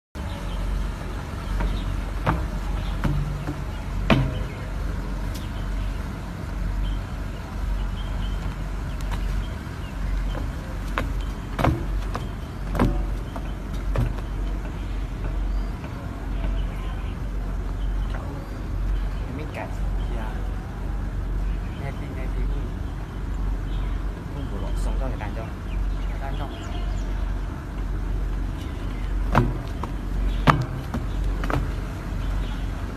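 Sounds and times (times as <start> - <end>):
low outdoor rumble: 0.2 - 32.9
feet knocking on poles: 0.9 - 5.5, 8.3 - 16.8, 27.8 - 32.8.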